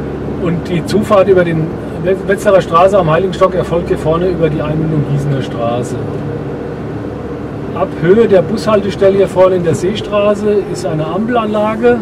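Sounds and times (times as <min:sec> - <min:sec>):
car engine and tyre hum: 0:00.0 - 0:12.0.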